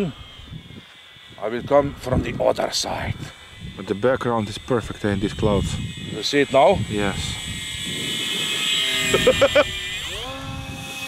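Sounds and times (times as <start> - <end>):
rc plane motor whining: 0.0 - 11.0.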